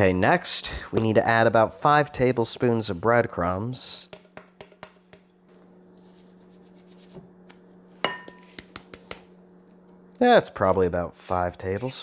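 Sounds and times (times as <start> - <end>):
low steady hum: 0.0 - 12.0
glass clink: 8.0 - 8.4.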